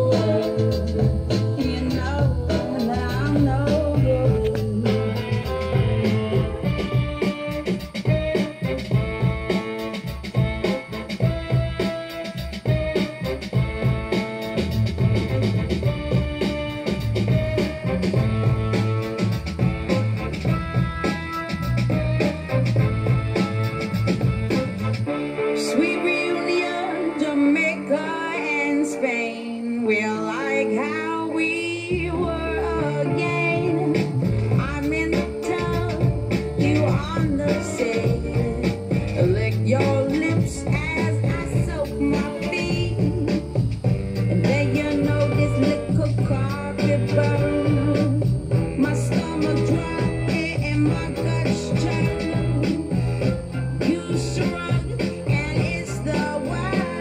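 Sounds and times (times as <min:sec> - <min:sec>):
pop song with singing: 0:00.0 - 0:07.4, 0:25.4 - 0:57.0.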